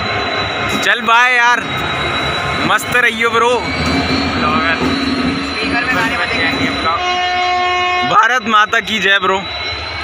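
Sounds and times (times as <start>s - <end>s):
low rumble of train: 0.0s - 10.0s
train horn: 6.0s - 8.4s.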